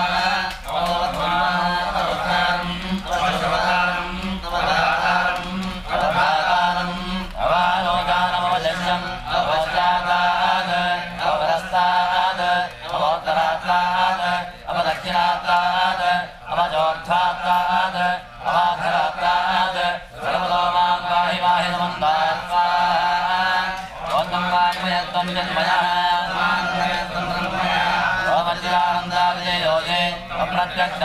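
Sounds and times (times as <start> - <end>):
men chanting: 0.0 - 31.0.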